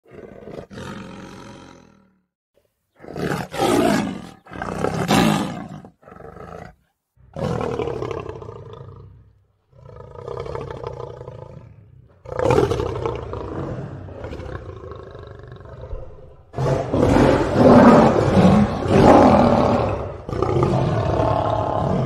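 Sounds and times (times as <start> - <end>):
lion roaring: 3.0 - 22.0.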